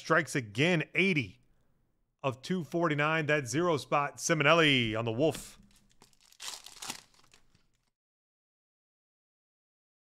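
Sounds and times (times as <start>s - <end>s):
trading cards rustling and sliding: 5.7s - 7.9s.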